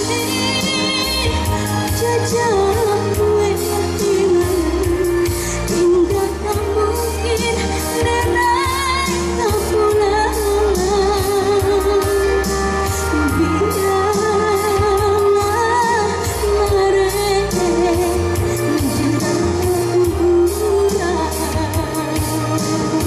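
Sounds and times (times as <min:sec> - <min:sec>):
amplified band backing: 0:00.0 - 0:23.0
woman singing pop song: 0:00.0 - 0:23.0.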